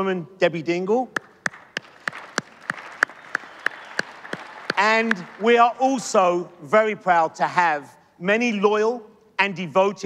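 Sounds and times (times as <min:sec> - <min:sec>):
close hand claps: 0:01.2 - 0:06.5
crowd clapping: 0:01.2 - 0:06.8.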